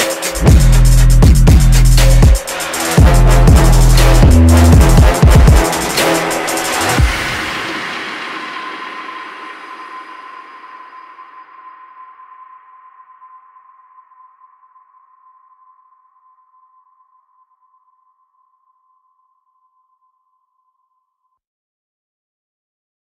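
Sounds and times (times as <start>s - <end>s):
electronic music reverberant tail: 0.0s - 15.3s
high steady ringing tone: 9.8s - 21.4s.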